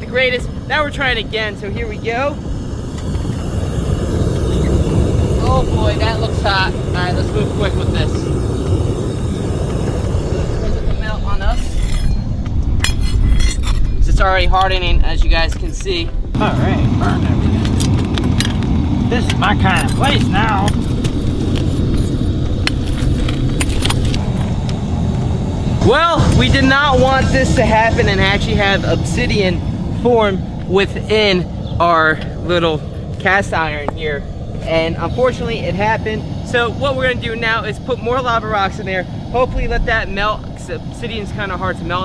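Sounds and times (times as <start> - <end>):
low rumble: 0.0 - 42.0
propane burner flame rushing: 0.0 - 42.0.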